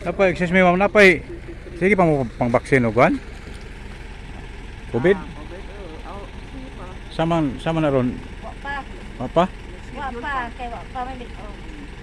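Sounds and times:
steady low hum: 0.0 - 12.0
person speaking: 4.9 - 11.9.

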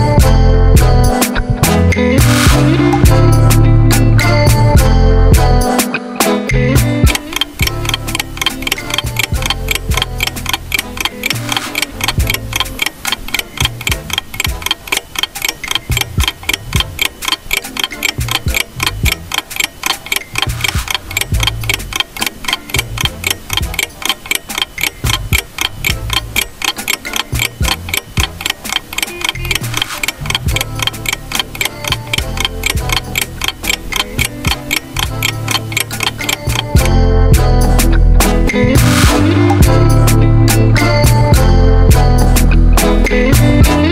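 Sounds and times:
bass line background music: 0.0 - 43.9
fast clock ticking: 6.8 - 37.9, 38.8 - 39.8.

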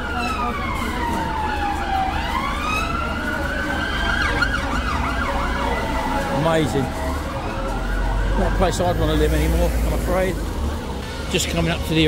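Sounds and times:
emergency siren wailing: 0.0 - 11.9
city traffic rumble: 0.0 - 12.0.

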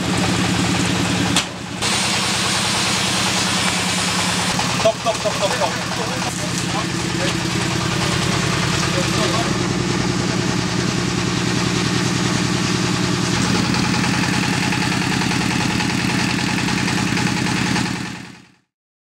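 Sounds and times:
engine running steadily: 0.0 - 18.6.

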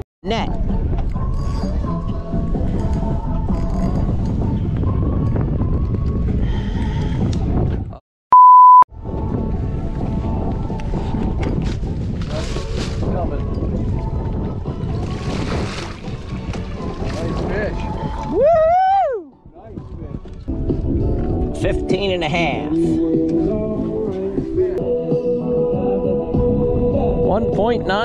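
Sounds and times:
background music: 0.2 - 7.4, 8.9 - 28.0
wind: 0.2 - 8.0, 8.9 - 24.8
water: 0.3 - 7.0, 9.0 - 19.0, 19.6 - 23.0
censor bleep: 8.3 - 8.9.

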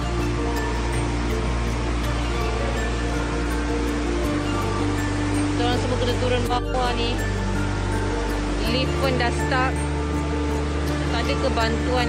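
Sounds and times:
sustained low music notes: 0.0 - 12.0.

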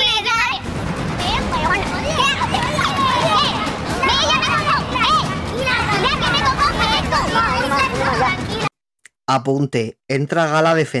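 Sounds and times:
noisy room background: 0.0 - 8.7
people talking over one another: 0.0 - 8.7.

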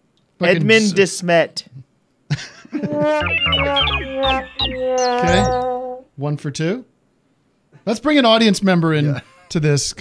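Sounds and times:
synthesized falling notes: 2.9 - 6.0
low synth bass: 3.0 - 6.0.

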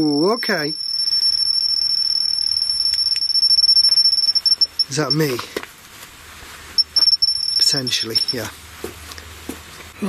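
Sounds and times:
high-pitched electronic alarm tone: 0.0 - 5.3, 6.8 - 8.5.

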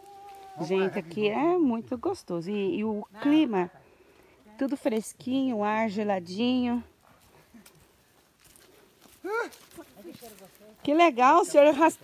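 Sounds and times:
footsteps on dirt trail: 0.0 - 1.5, 4.1 - 12.0.

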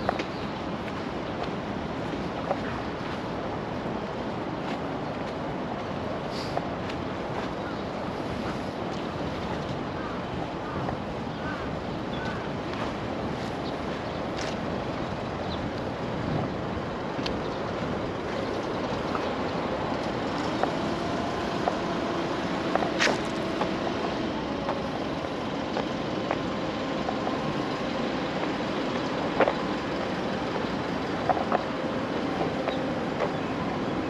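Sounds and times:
faint engine hum: 0.0 - 34.0
road traffic rumble: 0.0 - 34.0.

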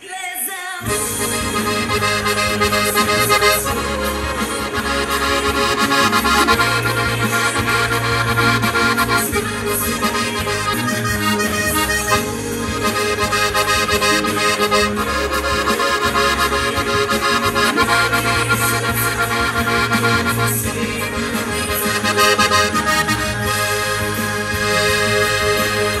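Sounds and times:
button accordion playing melody: 0.8 - 26.0.

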